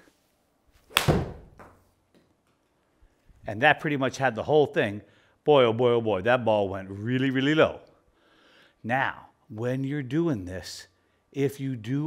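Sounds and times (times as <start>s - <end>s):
golf club striking ball: 0.9s - 1.8s.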